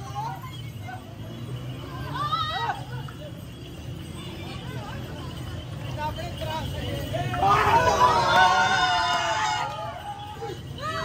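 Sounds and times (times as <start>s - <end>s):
faint voices of people walking: 0.0s - 11.0s
low traffic rumble: 0.0s - 11.0s.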